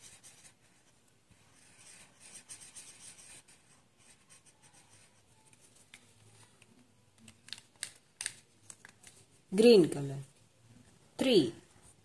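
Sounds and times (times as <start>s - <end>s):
plastic pen clicks and taps: 7.2s - 9.2s.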